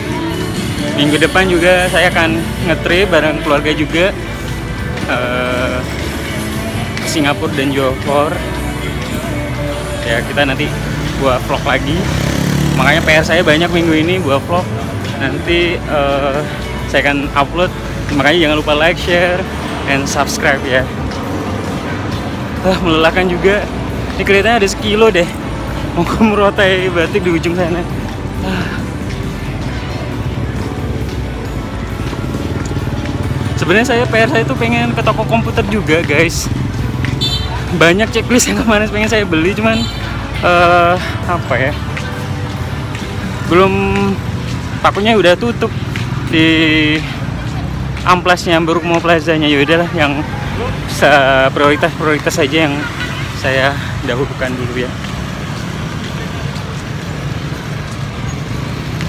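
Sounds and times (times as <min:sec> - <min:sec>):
motorbike traffic: 0:00.0 - 0:59.0
music playing: 0:00.0 - 0:59.0
vehicle engines rumbling: 0:00.0 - 0:59.0.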